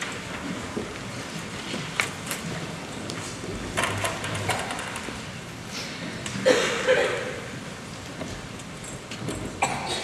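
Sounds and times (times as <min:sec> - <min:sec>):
hushed concert hall ambience: 0:00.0 - 0:10.0
audience member coughing: 0:06.4 - 0:07.5, 0:09.6 - 0:10.0.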